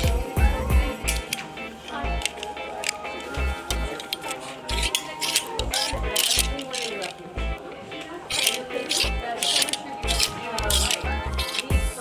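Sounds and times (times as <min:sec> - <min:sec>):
hip-hop track with rapping: 0:00.0 - 0:03.9, 0:08.5 - 0:12.0
clothes hangers scraping on rack: 0:00.9 - 0:07.4, 0:08.0 - 0:12.0.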